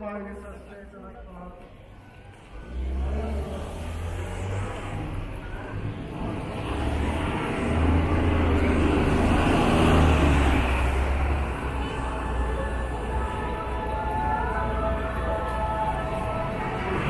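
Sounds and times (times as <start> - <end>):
vehicle engine rumble: 1.6 - 17.0.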